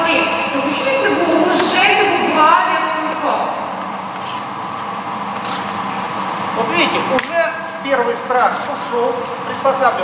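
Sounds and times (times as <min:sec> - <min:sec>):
indistinct talking in echoing hall: 0:00.0 - 0:10.0.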